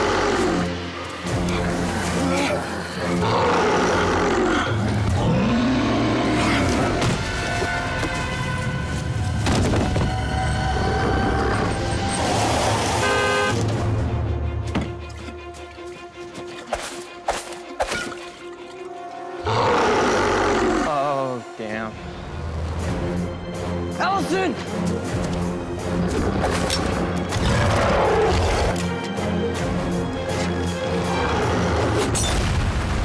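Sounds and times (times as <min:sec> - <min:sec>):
creature snarling roars: 0:00.0 - 0:00.8, 0:02.2 - 0:06.9, 0:19.4 - 0:21.0
dramatic orchestral score: 0:00.0 - 0:33.0.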